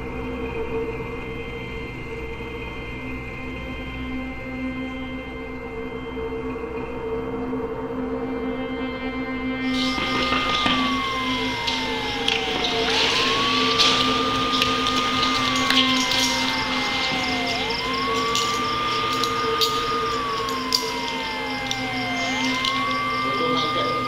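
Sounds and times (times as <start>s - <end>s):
emergency siren wailing: 9.6s - 24.0s
steady high tone: 9.6s - 24.0s
scattered clicks: 9.7s - 24.0s.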